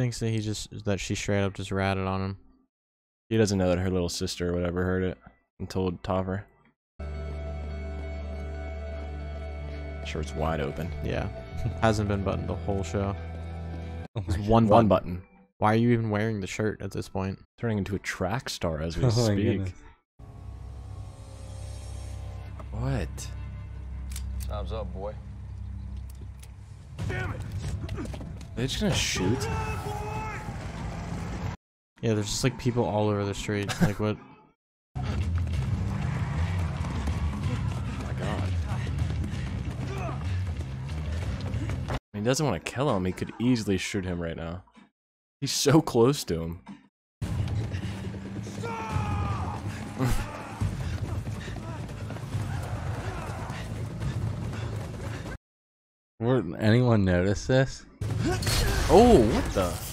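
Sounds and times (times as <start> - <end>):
background music: 7.0 - 16.6, 17.8 - 31.4
man speaking: 14.2 - 19.8
man calling out: 14.3 - 15.2, 19.0 - 19.8
running footsteps: 35.0 - 42.0, 47.2 - 55.4.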